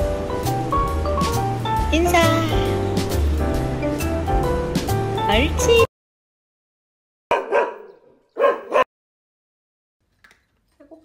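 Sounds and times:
dog barking: 7.3s - 8.9s.

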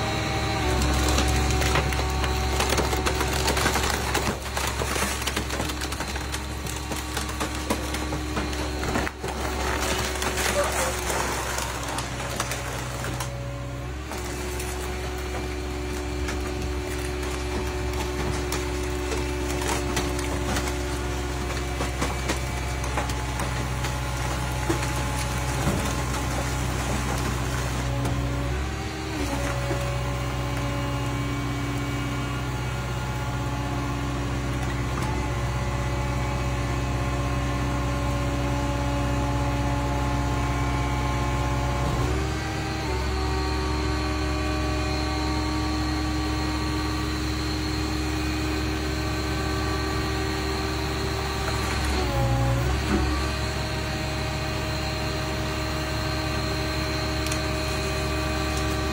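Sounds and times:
hydraulic power unit humming: 0.0s - 58.9s.

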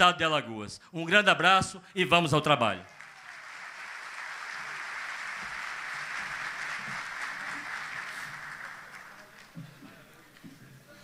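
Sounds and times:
audience applauding: 2.9s - 10.4s.

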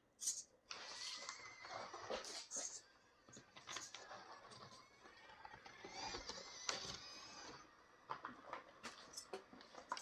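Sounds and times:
electric motor and gears whining: 3.8s - 8.2s.

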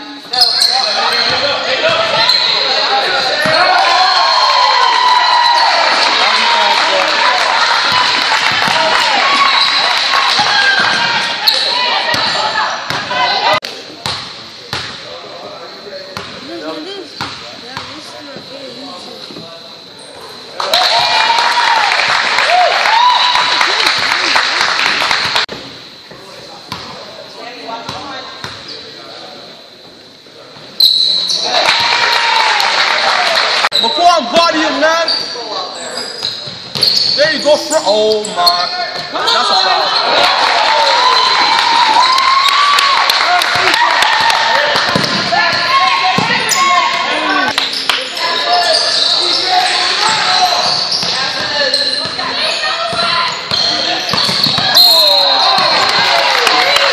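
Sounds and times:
crowd voices: 0.0s - 56.9s
sneakers squeaking on hardwood: 0.1s - 3.8s, 35.0s - 39.2s, 44.9s - 56.0s
basketball bouncing: 44.2s - 46.4s, 52.9s - 54.8s.

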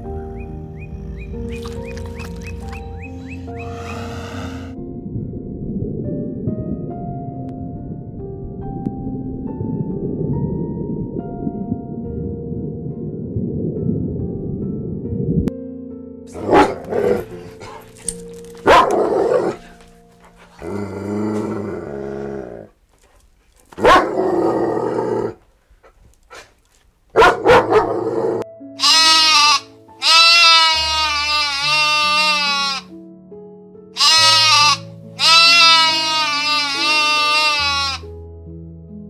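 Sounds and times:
soft background music: 0.0s - 22.8s, 23.8s - 25.4s, 27.1s - 39.0s
dogs barking: 16.3s - 20.7s, 23.8s - 24.3s, 27.2s - 28.4s
sheep bleating: 28.8s - 32.9s, 34.0s - 38.1s.

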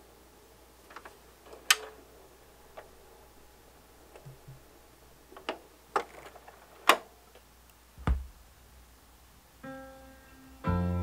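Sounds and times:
faint low hum: 0.0s - 11.0s
vinyl surface clicks and pops: 0.9s - 2.0s, 4.1s - 4.7s
low thump: 8.0s - 8.4s.

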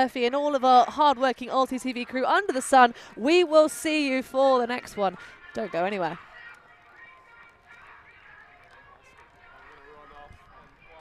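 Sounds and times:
faint distant voices: 1.0s - 11.0s.

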